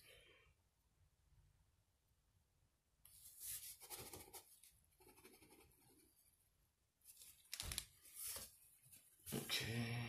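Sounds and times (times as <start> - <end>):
paper scratching and rustling: 7.1 - 9.5.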